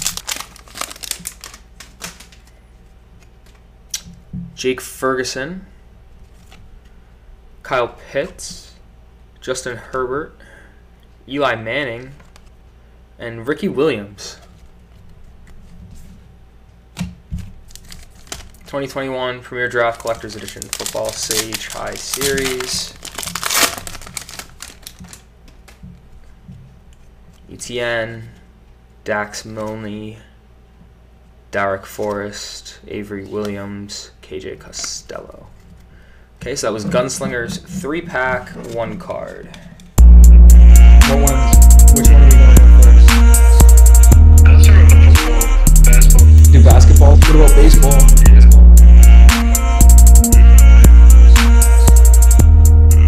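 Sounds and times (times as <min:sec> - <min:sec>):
foil wrapper tearing and crinkling: 0:00.0 - 0:02.5, 0:17.6 - 0:18.7, 0:19.9 - 0:25.7
trading cards clicking: 0:20.0 - 0:25.8.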